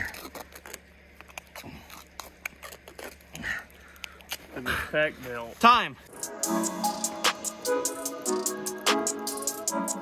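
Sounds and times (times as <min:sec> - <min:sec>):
duct tape crackling off roll: 0:00.0 - 0:03.5.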